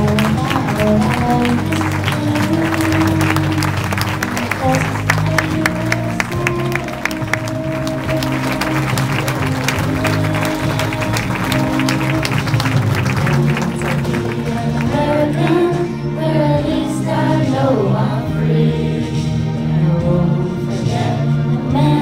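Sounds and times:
people clapping: 0.0 - 15.9
backing music track: 0.0 - 22.0.

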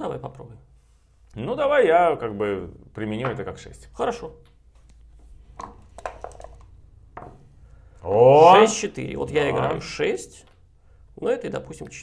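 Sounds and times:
dice gathered into cup: 5.6 - 6.7
game pieces clicking on board: 5.6 - 6.7.

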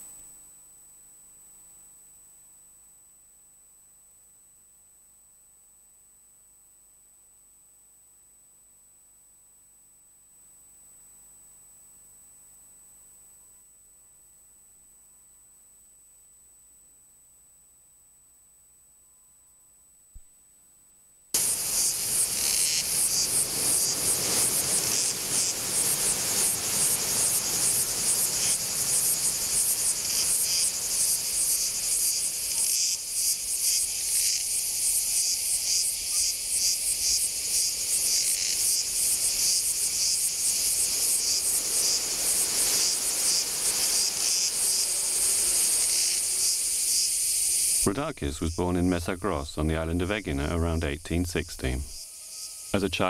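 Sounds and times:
faint outdoor haze: 21.4 - 53.0
insects shrilling: 21.4 - 53.0.

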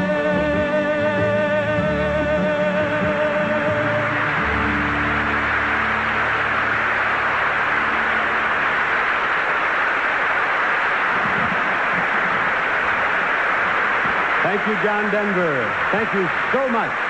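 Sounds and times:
audience applauding: 2.2 - 17.0.

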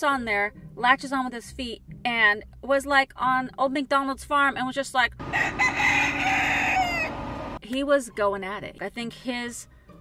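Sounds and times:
rooster crowing: 5.2 - 7.6.

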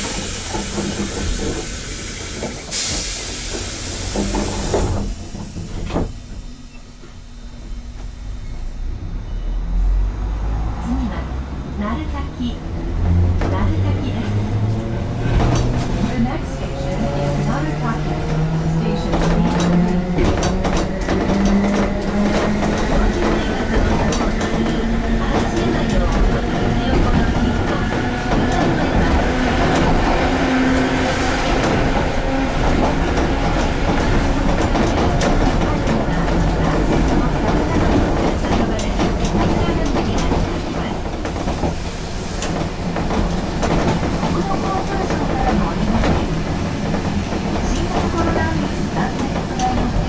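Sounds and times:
tram motors whining: 0.0 - 50.0.

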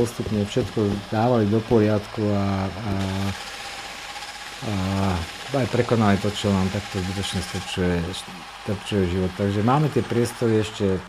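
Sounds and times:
electric drill mixing cement: 0.0 - 11.0.

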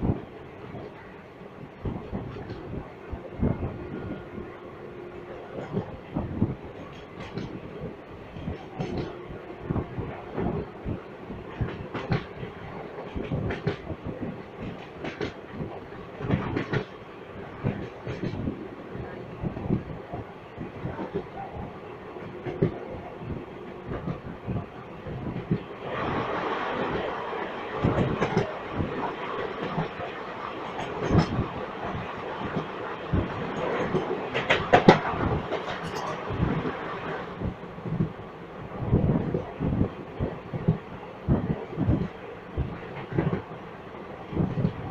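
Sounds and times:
train coaches rumbling: 0.0 - 44.9
train passing on next track: 0.0 - 44.9
wheels clicking over rail joints: 13.0 - 17.0, 27.8 - 36.8.

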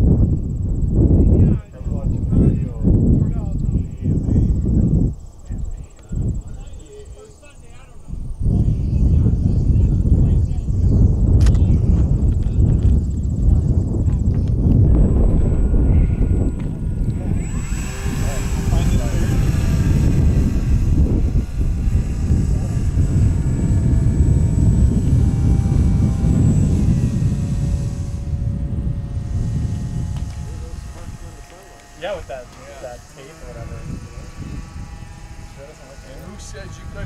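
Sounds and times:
model glider motor whine: 0.0 - 37.0
wind rumbling on microphone: 0.0 - 37.0.

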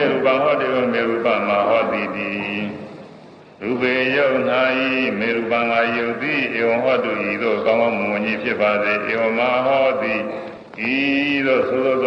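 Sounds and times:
man chanting in held notes: 0.0 - 3.0, 3.6 - 12.0.

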